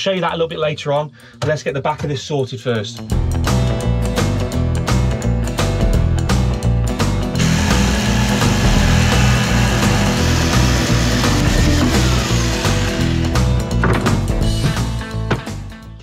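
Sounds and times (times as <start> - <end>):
background music with beat: 0.0 - 16.0
jigsaw cutting board: 7.4 - 14.8.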